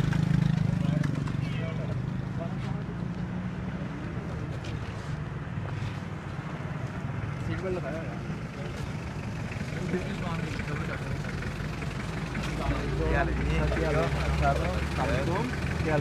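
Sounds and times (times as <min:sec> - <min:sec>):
van engine idling: 0:07.8 - 0:16.0.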